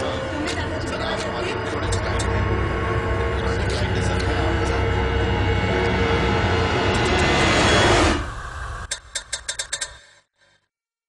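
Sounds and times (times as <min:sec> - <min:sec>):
loud mechanical din: 0:00.0 - 0:09.9.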